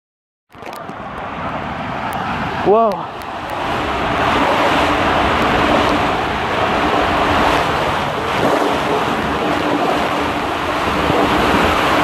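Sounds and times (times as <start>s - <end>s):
water rushing: 0.6s - 12.0s
wind buffeting microphone: 0.6s - 12.0s.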